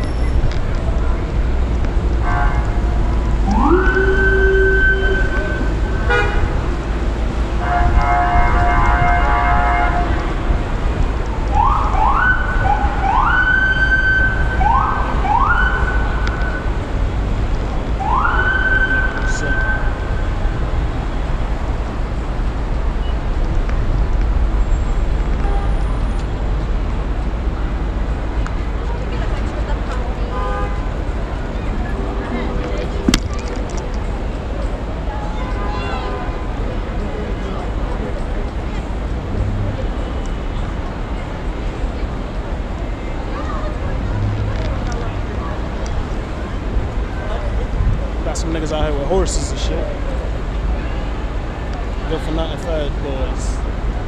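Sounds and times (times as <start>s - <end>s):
city traffic rumble: 0.0s - 54.0s
emergency siren whooping: 3.4s - 5.8s, 11.5s - 16.6s, 18.0s - 19.9s.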